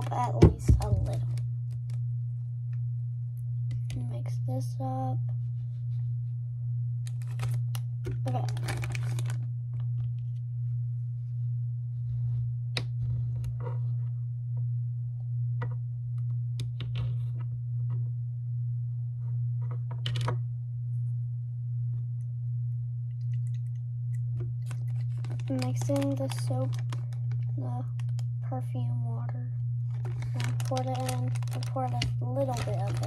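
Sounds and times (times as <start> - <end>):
steady low hum: 0.0 - 33.0
plastic zip bag crinkling: 7.1 - 9.4, 24.6 - 28.3, 29.9 - 33.0.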